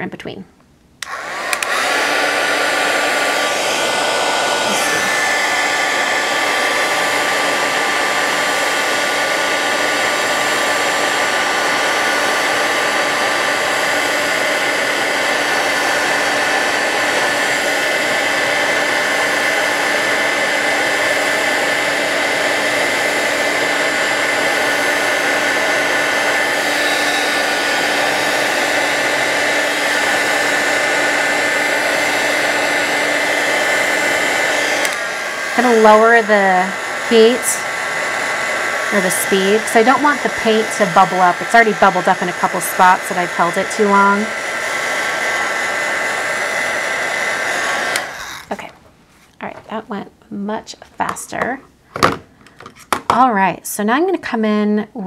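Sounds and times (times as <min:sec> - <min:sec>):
heat tool blowing air: 0:01.0 - 0:49.6.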